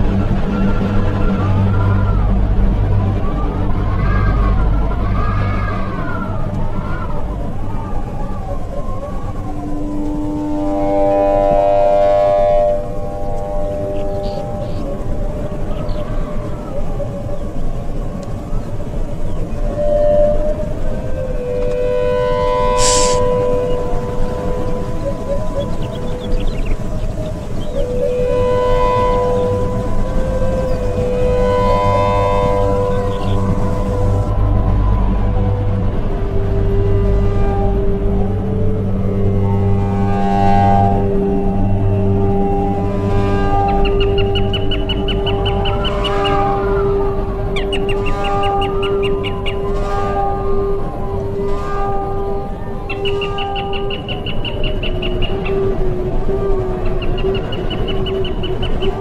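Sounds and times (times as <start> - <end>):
music of long held tones: 0.0 - 59.0
high trilling tones: 6.7 - 17.2, 19.3 - 35.6.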